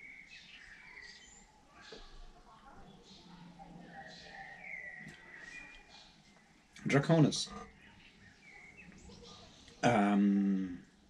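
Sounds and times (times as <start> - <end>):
man humming low: 9.8 - 10.8.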